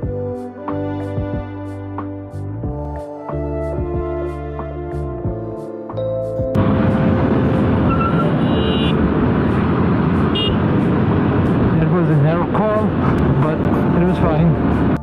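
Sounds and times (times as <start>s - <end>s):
wind rush and road noise: 6.6s - 15.0s.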